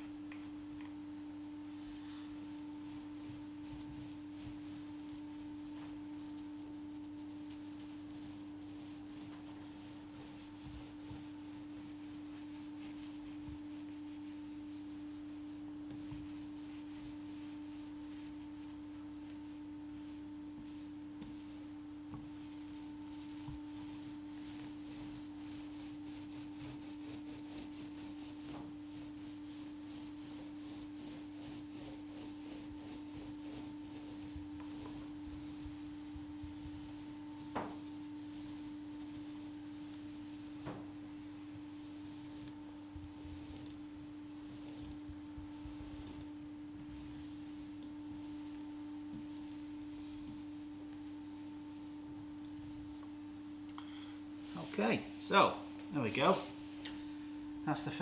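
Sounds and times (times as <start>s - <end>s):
steady one-note hum: 0.0s - 55.2s
paint roller rubbing: 1.6s - 53.1s, 54.4s - 56.8s.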